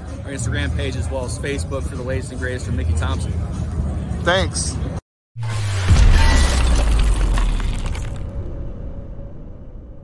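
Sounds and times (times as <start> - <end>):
noisy crash: 5.4 - 9.3.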